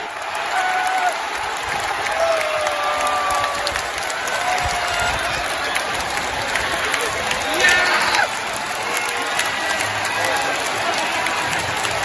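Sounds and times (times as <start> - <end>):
long held crowd calls: 0.0 - 12.0
stadium crowd cheering and clapping: 0.0 - 12.0.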